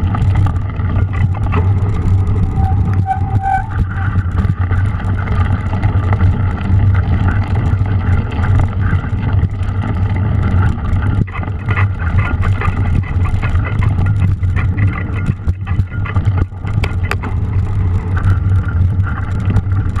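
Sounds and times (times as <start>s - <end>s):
bike rattling and clicking: 0.0s - 20.0s
tyres rumbling on mud: 0.0s - 20.0s
wind on microphone: 0.0s - 20.0s.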